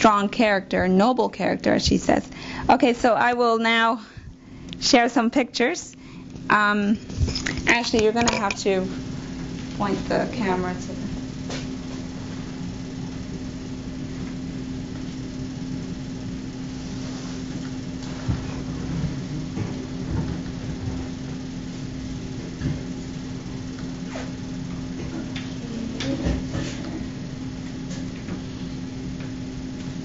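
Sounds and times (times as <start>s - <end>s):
low hum: 5.9s - 30.0s.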